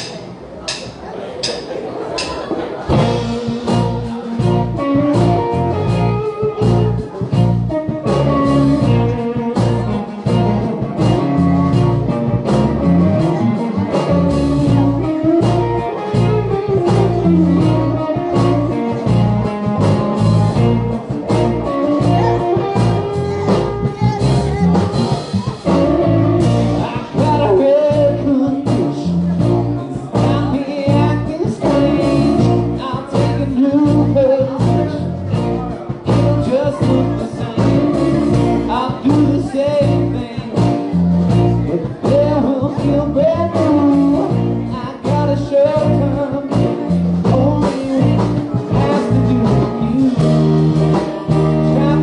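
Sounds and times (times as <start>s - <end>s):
live band with fiddle and guitars: 2.8s - 52.0s.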